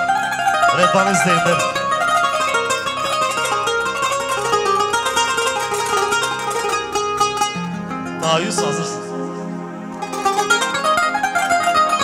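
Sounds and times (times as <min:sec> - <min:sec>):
plucked zither fast runs: 0:00.0 - 0:09.2
low accompaniment: 0:00.0 - 0:12.0.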